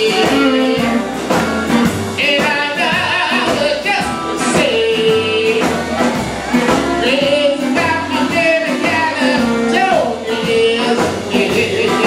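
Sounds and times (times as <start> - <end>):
live blues band: 0.0 - 12.0.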